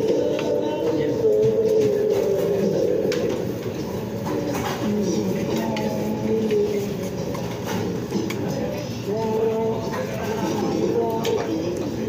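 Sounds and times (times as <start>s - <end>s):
low background din: 0.0s - 12.0s.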